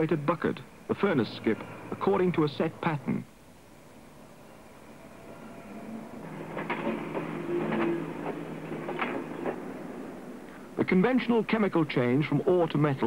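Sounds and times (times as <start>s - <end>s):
industrial machinery humming: 0.0s - 12.5s.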